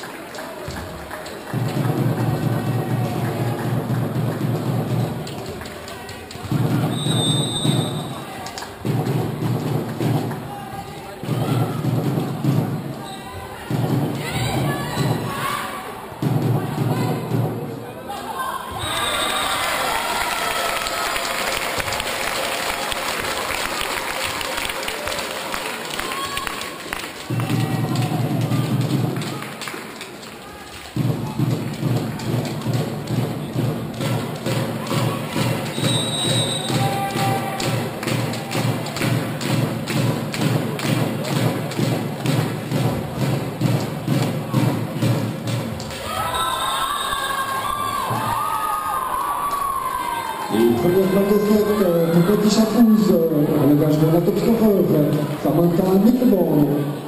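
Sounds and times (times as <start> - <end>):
crowd cheering and shouting: 0.0 - 5.0, 5.9 - 39.5, 45.8 - 57.0
loud rhythmic thumping: 0.6 - 18.0, 26.9 - 46.2.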